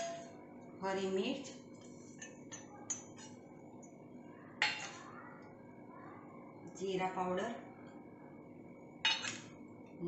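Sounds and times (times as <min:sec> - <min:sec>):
steel kitchenware clinking: 0:04.6 - 0:05.0, 0:09.0 - 0:09.5.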